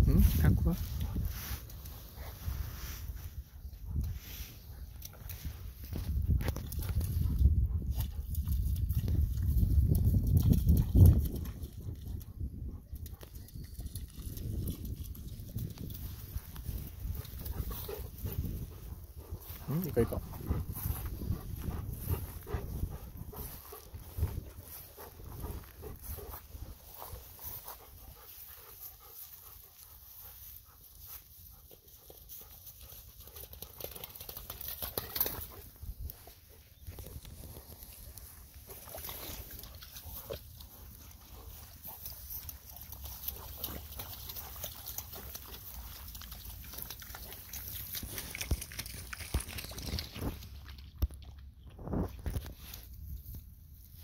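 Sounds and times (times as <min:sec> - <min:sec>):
rustling in grass: 0:00.1 - 0:05.9, 0:15.7 - 0:33.0
light footsteps: 0:15.7 - 0:32.1
dogs sniffing: 0:16.0 - 0:48.7
steady low rumble: 0:16.1 - 0:28.2.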